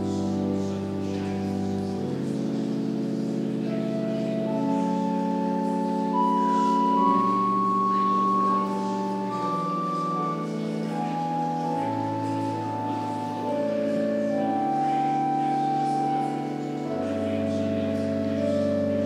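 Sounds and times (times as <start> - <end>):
church organ chords: 0.0 - 19.0
held organ melody line: 0.0 - 19.0.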